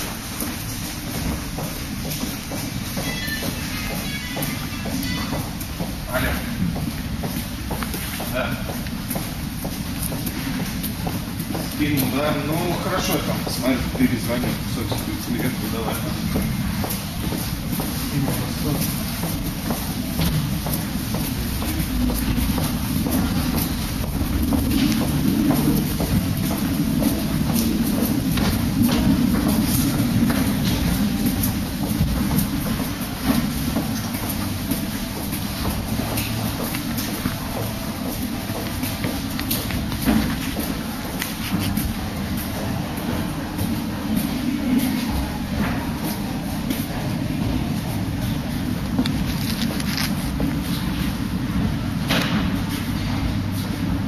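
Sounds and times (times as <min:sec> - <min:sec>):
footsteps: 0:00.0 - 0:54.0
steady low rumble: 0:00.0 - 0:54.0.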